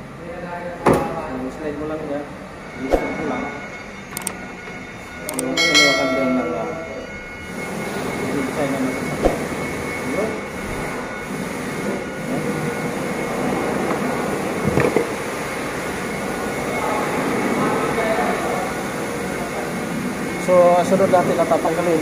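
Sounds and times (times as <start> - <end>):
machinery hum: 1.3 - 22.0.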